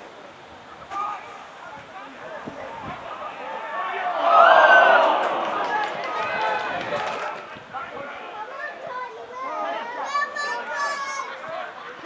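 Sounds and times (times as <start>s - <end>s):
spectators calling out and talking: 0.0s - 12.0s.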